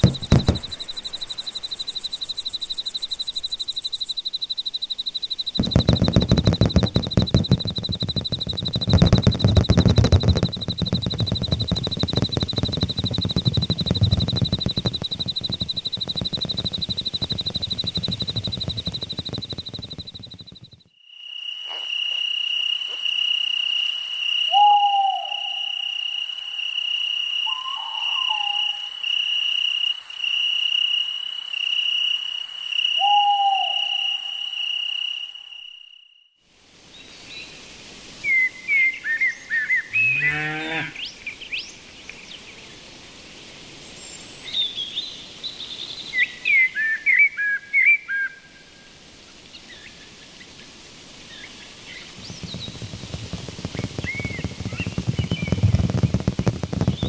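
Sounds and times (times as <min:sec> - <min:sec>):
birds chirping: 0:00.0 - 0:04.2
cricket trill: 0:00.0 - 0:36.4, 0:50.3 - 0:57.0
low hooting calls: 0:24.5 - 0:25.9, 0:27.4 - 0:29.0, 0:33.0 - 0:34.4
cow mooing: 0:40.0 - 0:41.0.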